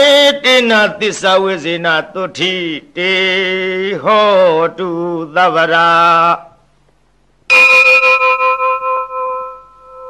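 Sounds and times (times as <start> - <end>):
bell ringing: 7.5 - 10.0.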